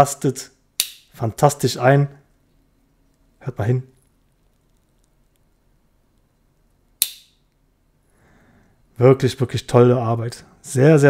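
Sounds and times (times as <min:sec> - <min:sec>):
knife blade snapping shut: 0:07.0 - 0:07.3.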